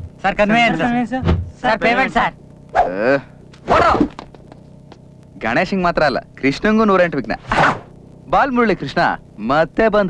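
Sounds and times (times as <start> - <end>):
low steady background hum: 0.0 - 10.0.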